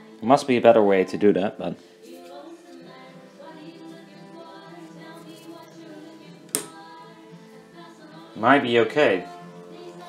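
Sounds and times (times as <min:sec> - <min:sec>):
background voices: 0:00.0 - 0:10.0
faint radio music: 0:00.0 - 0:10.0.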